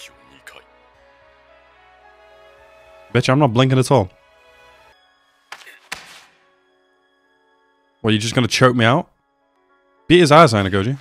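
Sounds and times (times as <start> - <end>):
faint sustained music: 0.0 - 11.0.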